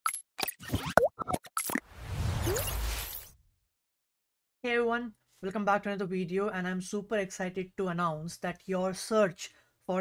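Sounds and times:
cartoon pops and blips: 0:00.4 - 0:01.8.

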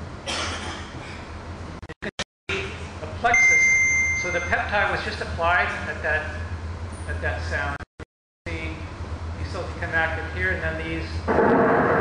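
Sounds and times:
man talking: 0:02.5 - 0:06.4, 0:07.1 - 0:07.8, 0:08.5 - 0:11.2
high-pitched beep: 0:03.3 - 0:04.7.

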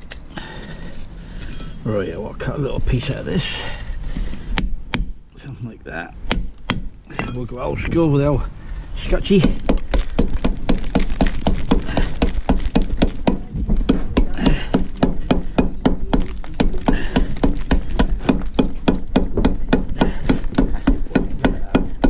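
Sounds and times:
hammer chipping concrete block: 0:04.6 - 0:05.2, 0:06.3 - 0:07.4, 0:09.3 - 0:22.0.

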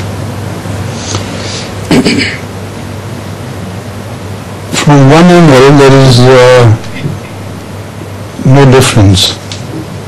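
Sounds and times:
background hiss: 0:00.0 - 0:10.0
low electrical hum: 0:00.0 - 0:10.0.

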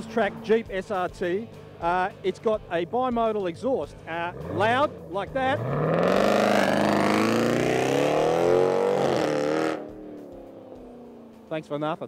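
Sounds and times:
car engine accelerating hard: 0:00.0 - 0:11.5.

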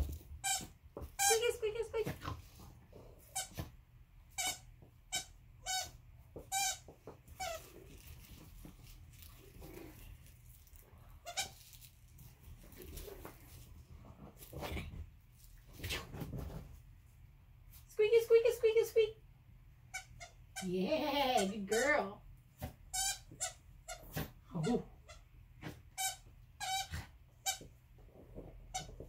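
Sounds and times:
squeaky dog toy: 0:00.4 - 0:01.6, 0:04.3 - 0:07.7, 0:19.9 - 0:20.7, 0:21.4 - 0:22.1, 0:22.9 - 0:25.2, 0:26.0 - 0:27.7, 0:28.7 - 0:29.0.

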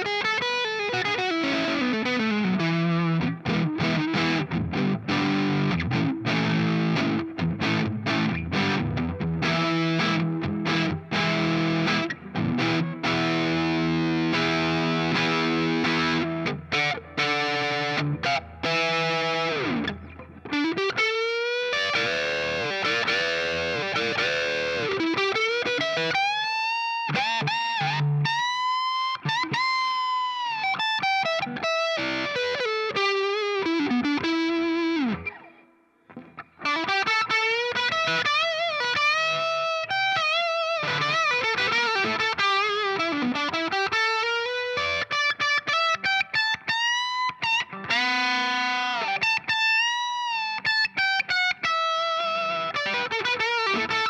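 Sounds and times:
distorted electric guitar: 0:00.0 - 0:54.0.

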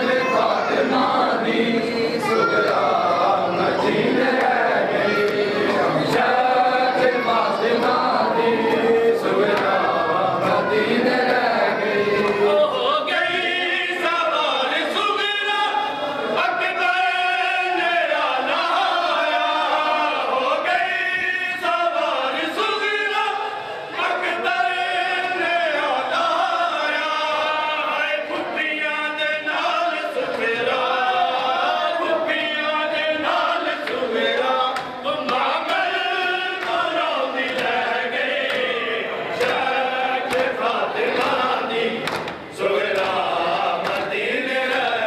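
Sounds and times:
men chanting a lament: 0:00.0 - 0:45.0.

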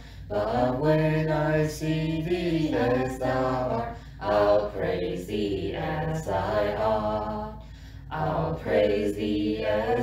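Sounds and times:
person singing a slow hymn: 0:00.0 - 0:10.0.

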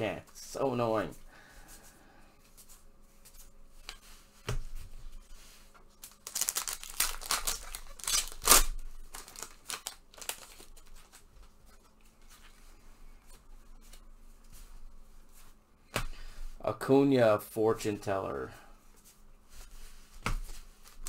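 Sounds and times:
wrapper tearing and crinkling: 0:06.0 - 0:11.2.

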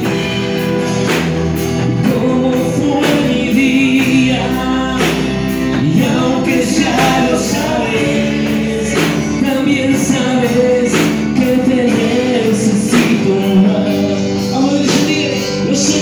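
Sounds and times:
people singing: 0:00.0 - 0:16.0
worship band playing: 0:00.0 - 0:16.0.

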